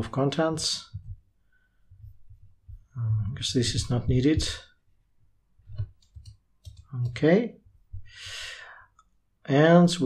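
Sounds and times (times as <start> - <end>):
computer mouse clicks: 5.7 - 7.2
keyboard clicks: 5.7 - 7.2.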